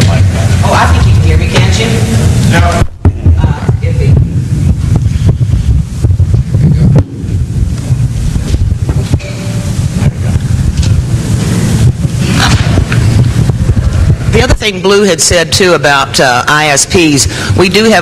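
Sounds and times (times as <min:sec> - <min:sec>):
microphone handling rumble: 0:00.0 - 0:15.7
microphone knocks and clicks: 0:02.8 - 0:09.4, 0:10.0 - 0:14.4.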